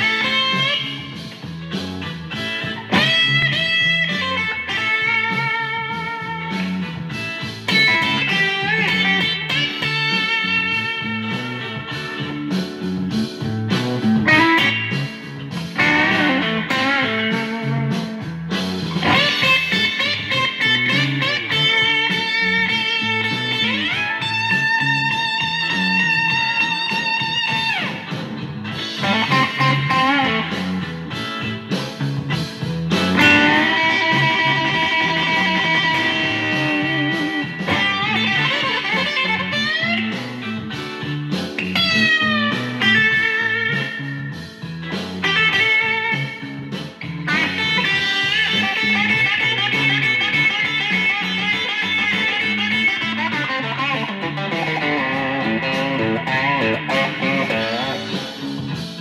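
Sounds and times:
electric guitar blues lead: 0.0s - 59.0s
low repeating guitar riff: 0.0s - 59.0s.

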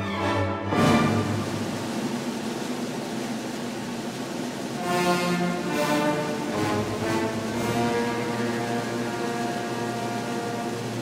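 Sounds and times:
symphony orchestra playing loudly: 0.0s - 2.2s, 4.7s - 11.0s.

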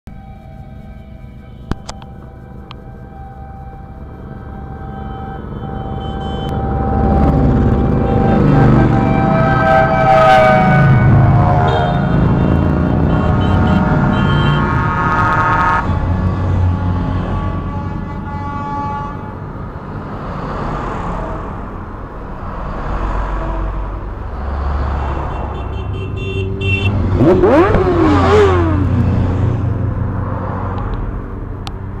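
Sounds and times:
car engines rumbling: 0.3s - 32.0s
long vehicle horn: 4.6s - 19.8s, 25.2s - 27.7s
motorcycle engines passing: 5.8s - 16.1s, 26.3s - 31.3s
short higher horn toots: 7.8s - 19.4s.

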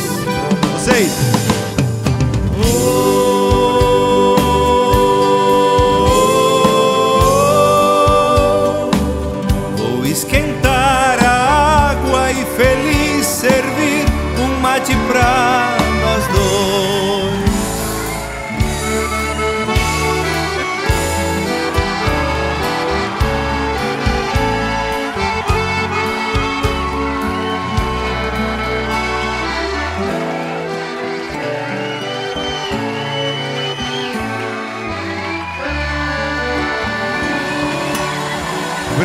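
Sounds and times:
drums: 0.0s - 29.3s
acoustic guitar: 0.0s - 39.0s
live band playing: 0.0s - 39.0s
piano accordion: 0.0s - 39.0s.

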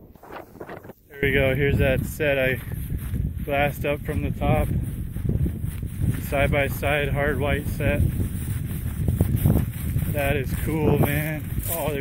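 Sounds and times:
footsteps in dry grass: 0.0s - 12.0s
wind buffeting microphone: 0.0s - 12.0s.

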